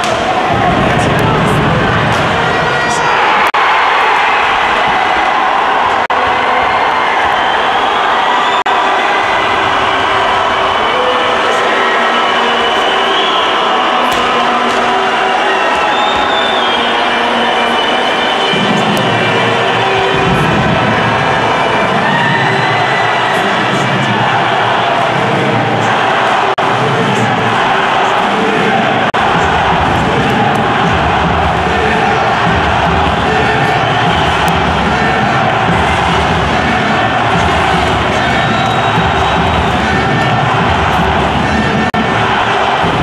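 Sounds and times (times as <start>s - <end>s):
arena crowd cheering: 0.0s - 43.0s.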